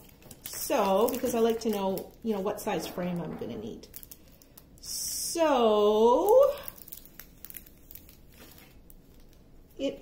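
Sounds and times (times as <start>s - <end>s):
plastic-covered canvas crinkling: 0.0s - 4.8s, 6.1s - 9.7s.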